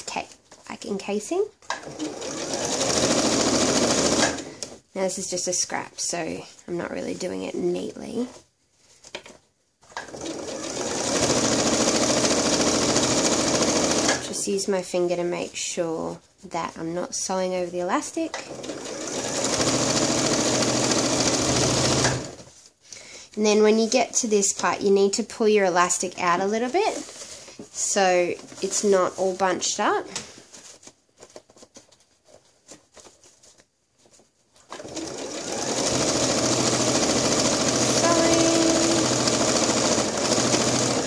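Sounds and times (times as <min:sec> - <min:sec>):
electric sewing machine stitching: 0:01.7 - 0:04.6, 0:10.0 - 0:14.3, 0:18.3 - 0:22.5, 0:34.7 - 0:41.0.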